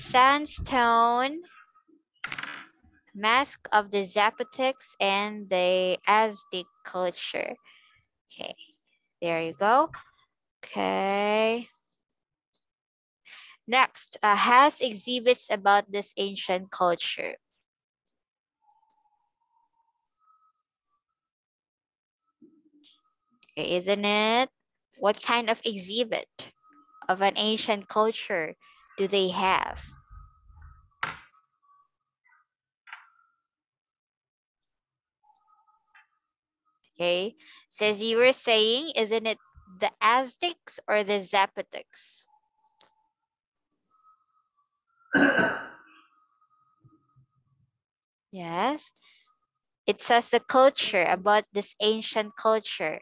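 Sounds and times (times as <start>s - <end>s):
person coughing: 45.2s - 45.8s.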